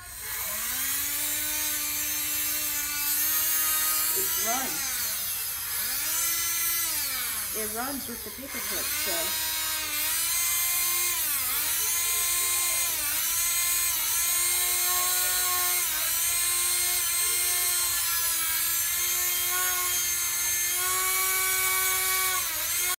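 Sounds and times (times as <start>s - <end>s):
electric motor whine: 0.0s - 23.0s.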